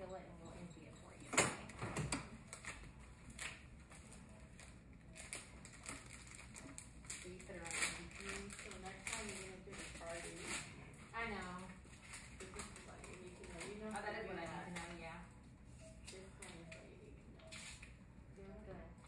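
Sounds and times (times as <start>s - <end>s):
plastic package crinkling: 5.1s - 10.7s.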